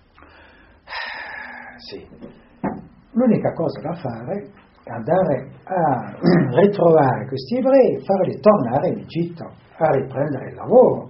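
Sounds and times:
man breathing in: 0:00.2 - 0:02.6.

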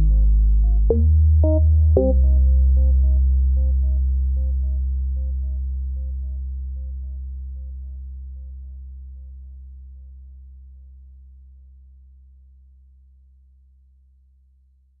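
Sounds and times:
deep steady bass tone: 0:00.0 - 0:15.0.

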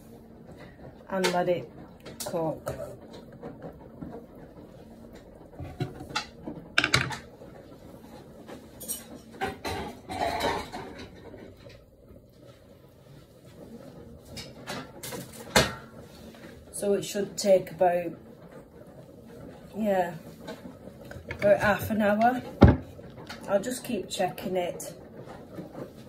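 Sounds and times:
pots and pans clinking: 0:05.6 - 0:07.3, 0:08.8 - 0:11.8.

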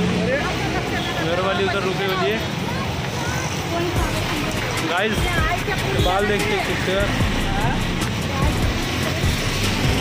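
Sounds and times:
auto-rickshaw engine: 0:00.0 - 0:10.0
street traffic noise: 0:00.0 - 0:10.0.

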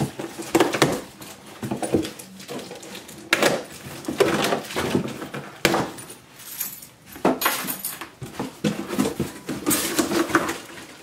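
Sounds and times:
cardboard and packaging rustling: 0:00.0 - 0:11.0.

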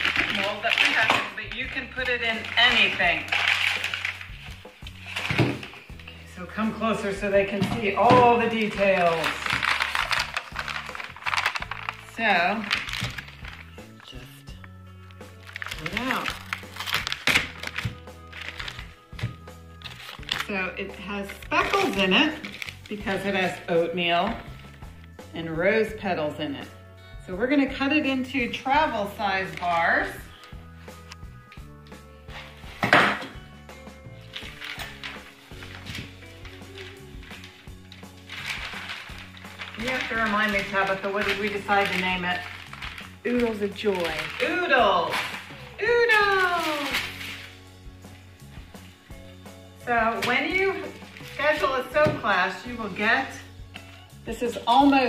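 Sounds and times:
plastic liner rustling: 0:00.0 - 0:06.1, 0:07.1 - 0:13.8, 0:15.4 - 0:20.6, 0:34.2 - 0:47.6
background music with bass line: 0:00.0 - 0:55.0.

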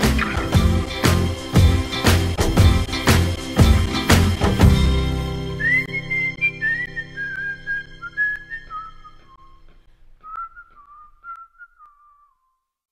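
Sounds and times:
soft background music: 0:00.0 - 0:09.9
person whistling a tune: 0:05.5 - 0:12.6.

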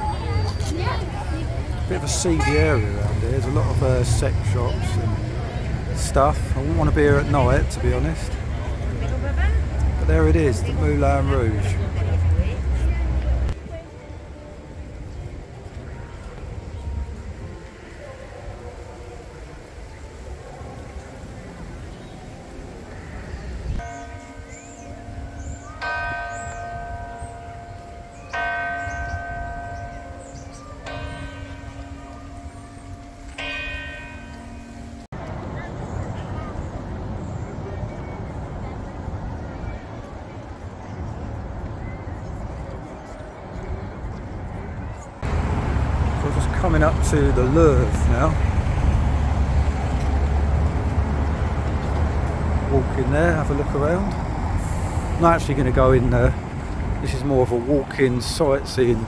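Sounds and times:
city background rumble: 0:00.0 - 0:59.0
church bell tolling: 0:23.8 - 0:35.1.

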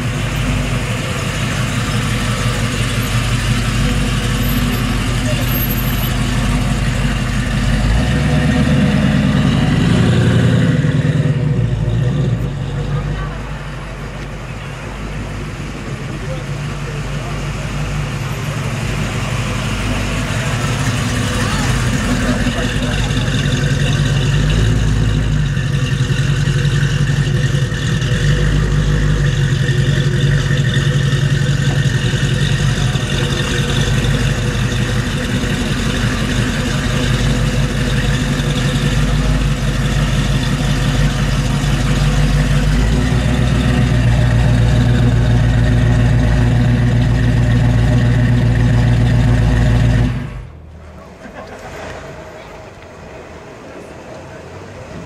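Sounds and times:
car engine deep rumble: 0:00.0 - 0:55.0.

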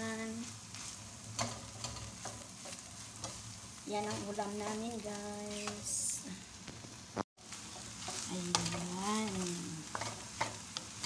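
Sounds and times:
food sizzling in a pan: 0:00.0 - 0:11.0
spatula scraping and tapping pan: 0:00.7 - 0:04.8, 0:05.5 - 0:06.0, 0:07.5 - 0:11.0.

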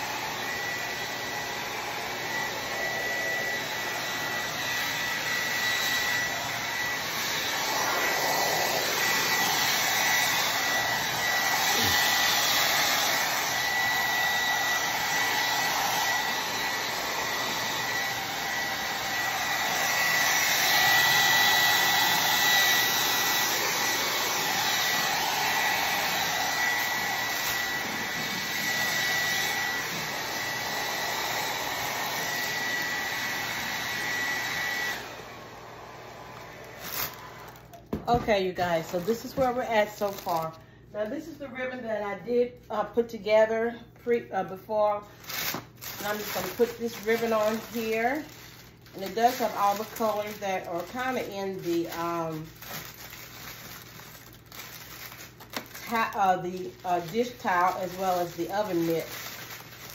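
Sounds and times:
hot-air blower whining: 0:00.0 - 0:59.9.

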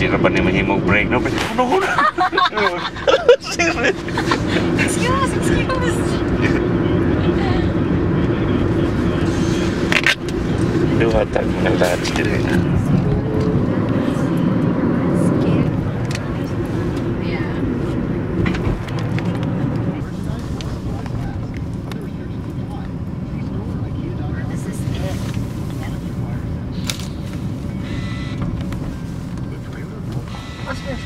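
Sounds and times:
car road and engine rumble: 0:00.0 - 0:31.0.

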